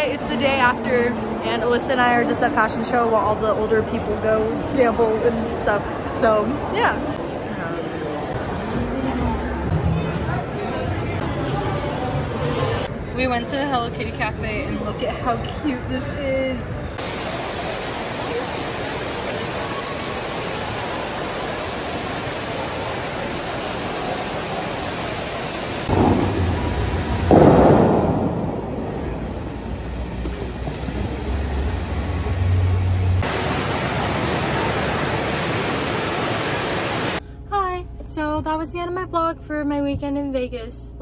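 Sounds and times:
fountain jets surging and spraying: 0.0s - 7.0s, 17.0s - 37.2s
steady rushing water: 17.0s - 27.6s, 28.4s - 37.2s.

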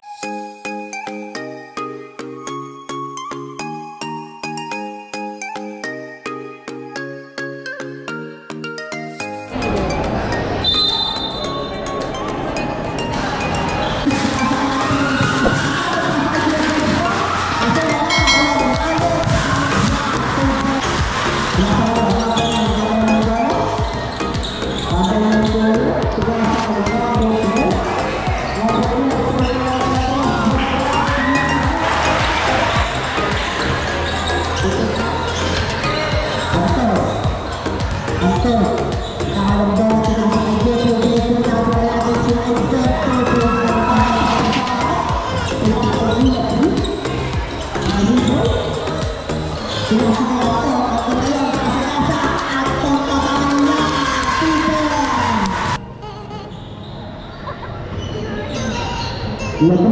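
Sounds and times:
music playing: 0.0s - 57.2s
basketball bouncing on court floor: 17.7s - 26.6s.

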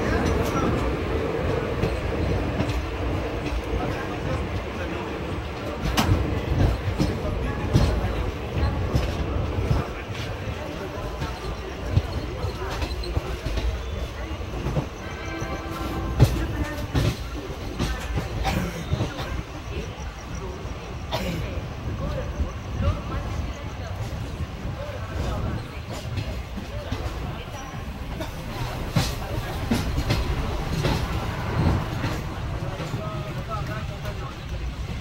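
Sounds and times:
train wheels rumbling on rail: 0.0s - 35.0s.

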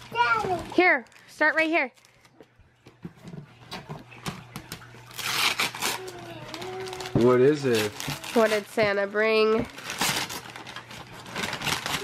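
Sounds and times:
wrapping paper rustling and tearing: 0.0s - 2.6s, 4.6s - 12.0s.

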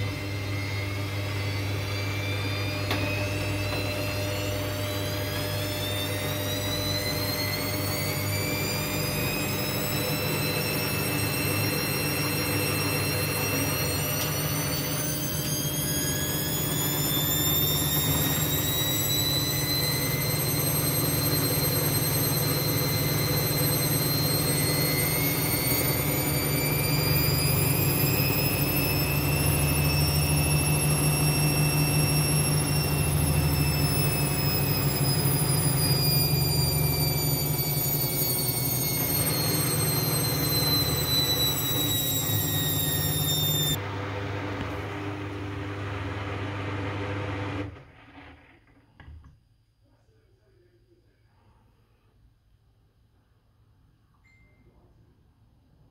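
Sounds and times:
high motor whine: 0.0s - 48.3s
washing machine spinning: 0.0s - 48.6s.

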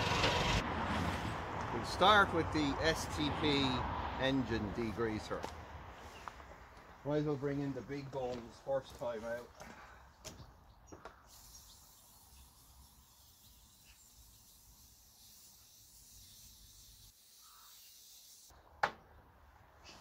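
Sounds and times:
aerosol can hissing: 11.3s - 18.5s.

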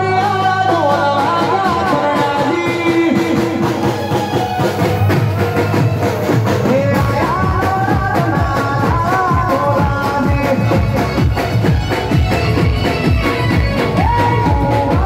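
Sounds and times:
man singing into a microphone: 0.0s - 4.3s, 6.2s - 11.7s, 14.0s - 15.0s
band playing folk song: 0.0s - 15.0s
steady drum beat: 0.0s - 15.0s.

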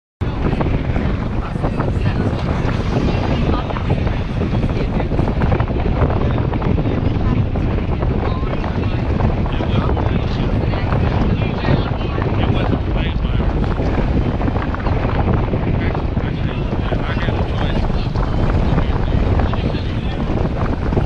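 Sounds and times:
indistinct voices: 0.2s - 21.0s
wind buffeting microphone: 0.2s - 21.0s.

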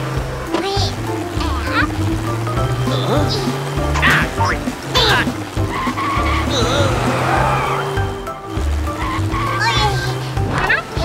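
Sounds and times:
cartoon music with bass beat: 0.0s - 11.0s
gliding cartoon sound effects: 1.3s - 11.0s.

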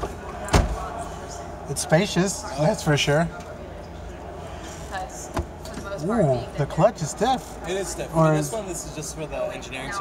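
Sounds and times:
crowd murmur: 0.0s - 10.0s
faint distant voices: 0.0s - 10.0s.

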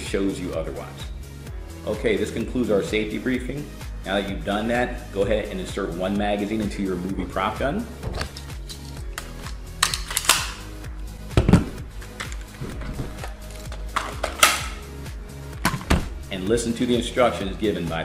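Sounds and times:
background music: 0.0s - 18.0s.

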